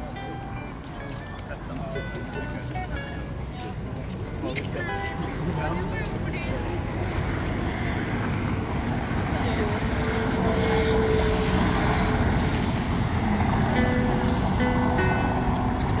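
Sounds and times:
city street traffic noise: 0:00.0 - 0:16.0
passers-by talking: 0:00.0 - 0:16.0
passing vehicle engine: 0:05.1 - 0:16.0.

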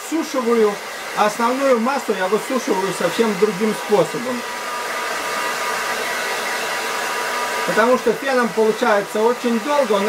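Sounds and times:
hair dryer blowing air: 0:00.0 - 0:10.0
hair dryer motor whine: 0:00.0 - 0:10.0.

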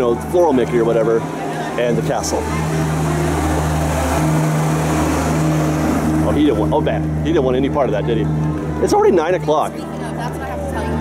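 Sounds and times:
bus engine humming: 0:00.0 - 0:11.0.

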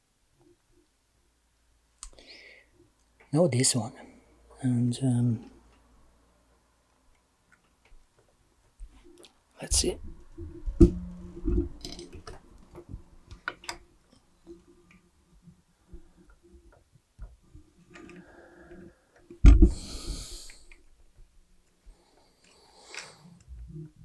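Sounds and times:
hiss: 0:19.7 - 0:20.7.

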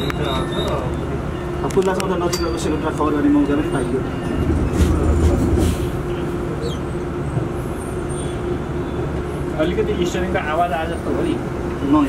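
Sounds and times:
bus ride low rumble: 0:00.0 - 0:12.0.

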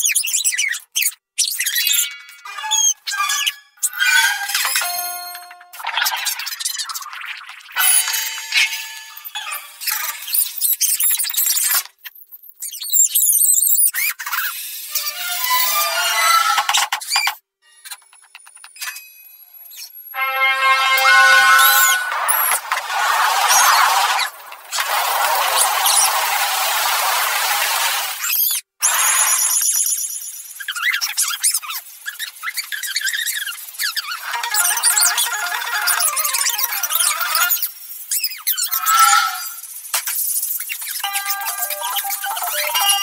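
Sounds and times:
sped-up squeaky cartoon chatter: 0:00.0 - 0:11.8, 0:12.6 - 0:17.4, 0:19.7 - 0:43.0.

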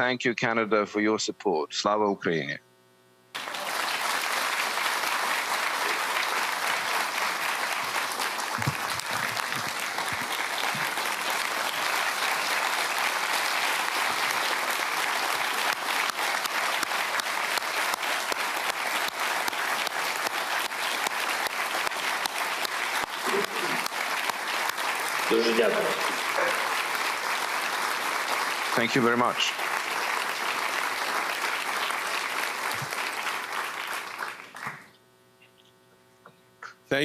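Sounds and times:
audience applauding: 0:03.3 - 0:34.9.

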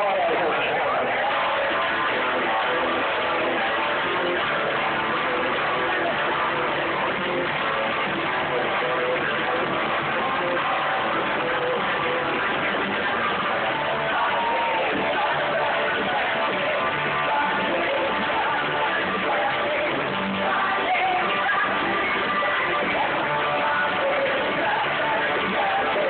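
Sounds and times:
electric guitar: 0:00.0 - 0:26.0
live rock band playing: 0:00.0 - 0:26.0.

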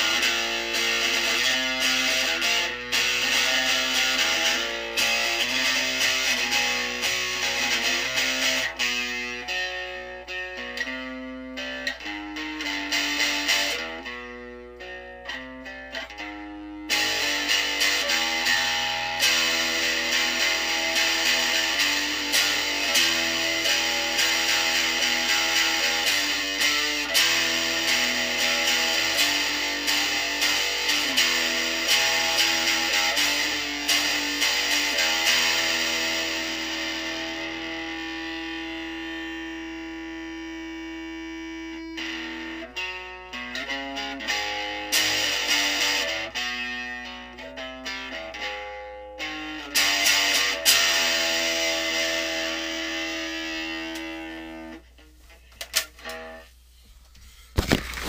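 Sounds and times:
guitar strumming and picking: 0:00.0 - 0:56.5, 0:57.5 - 0:58.0.

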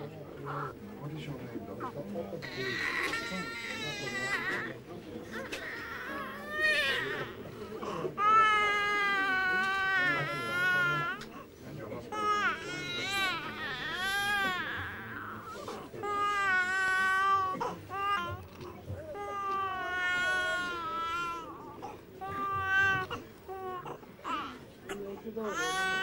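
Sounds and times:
newborn baby crying: 0:01.8 - 0:04.7, 0:05.3 - 0:11.4, 0:12.1 - 0:18.5, 0:19.2 - 0:26.0.

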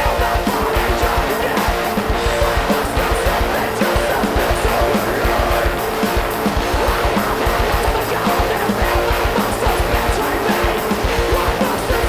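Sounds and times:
live rock band: 0:00.0 - 0:12.0
rapid kick drum beat: 0:00.0 - 0:12.0.

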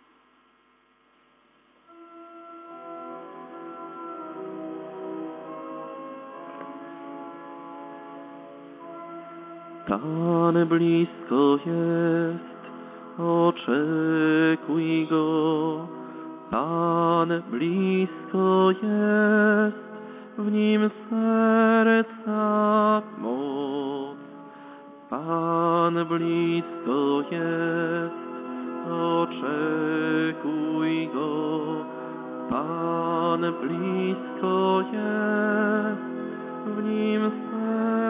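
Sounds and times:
organ chords: 0:01.8 - 0:38.0
vibrato melody: 0:01.9 - 0:11.1.

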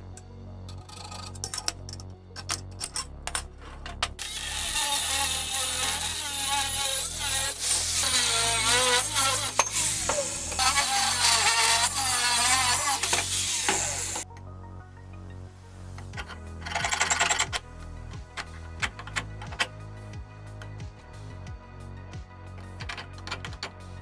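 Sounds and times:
angle grinder cutting steel: 0:04.1 - 0:14.2.

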